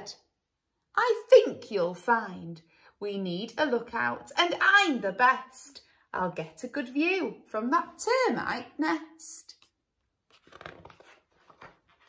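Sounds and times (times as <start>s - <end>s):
paper rustles and flaps: 10.2s - 12.0s.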